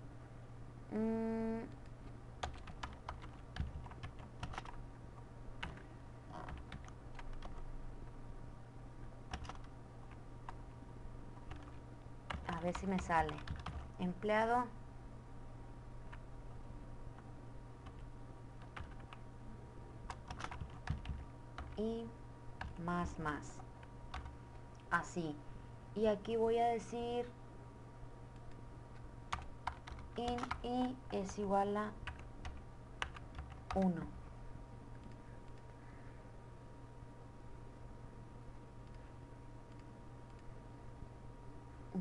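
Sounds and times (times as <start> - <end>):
keyboard typing: 1.6 - 4.8, 5.6 - 7.7, 9.3 - 10.6, 11.4 - 14.0, 17.1 - 19.2, 20.0 - 21.8, 22.6 - 24.8, 28.4 - 34.1.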